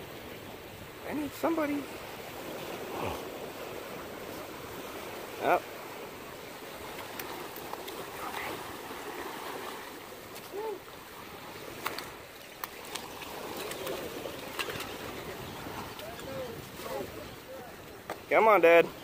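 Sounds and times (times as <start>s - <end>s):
surf washing against rocks: 0.0s - 19.0s
sharp slaps and taps on rock: 11.8s - 13.1s.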